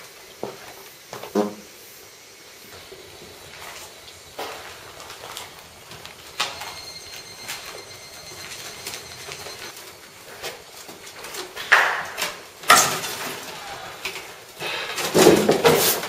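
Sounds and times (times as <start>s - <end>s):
shuffling footsteps: 2.7s - 12.2s
handling noise: 2.7s - 16.0s
faint high squeal: 3.1s - 9.8s.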